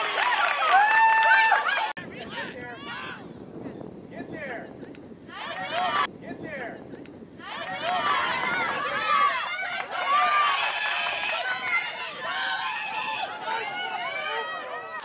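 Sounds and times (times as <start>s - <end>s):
people shouting and calling: 0.0s - 3.2s, 5.3s - 6.1s, 7.4s - 15.0s.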